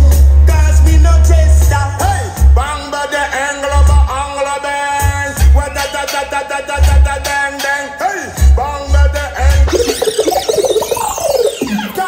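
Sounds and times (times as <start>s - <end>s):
jittery synthesizer warbling: 9.6s - 12.0s
synthesizer falling sweep: 9.7s - 12.0s.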